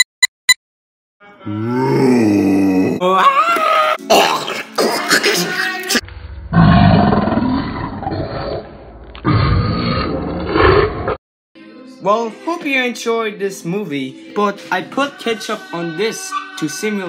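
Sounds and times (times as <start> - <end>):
person growling and grunting: 1.4 - 6.0, 6.6 - 11.2.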